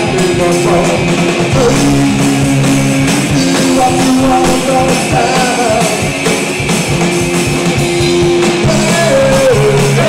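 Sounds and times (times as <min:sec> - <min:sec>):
upright double bass plucked: 0:00.0 - 0:06.2
drum kit beat: 0:00.0 - 0:10.0.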